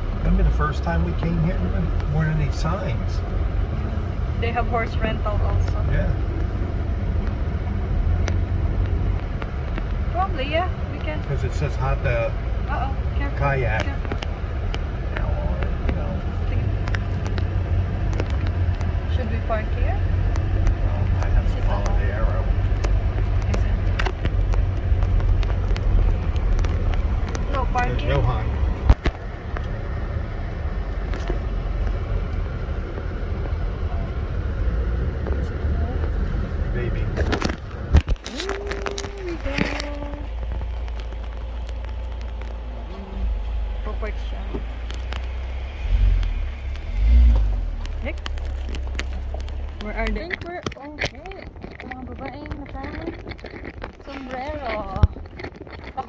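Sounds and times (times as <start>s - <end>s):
road and engine rumble: 0.0s - 56.0s.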